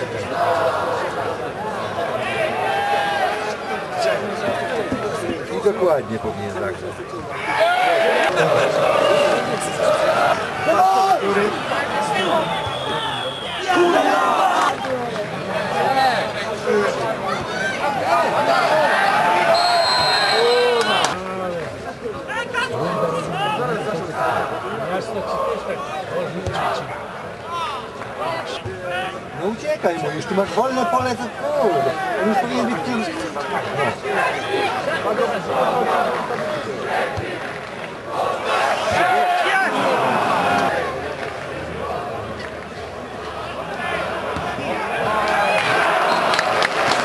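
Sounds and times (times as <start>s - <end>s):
players and spectators shouting: 0.0s - 47.0s
high-pitched whistle: 12.4s - 13.6s, 19.5s - 21.1s.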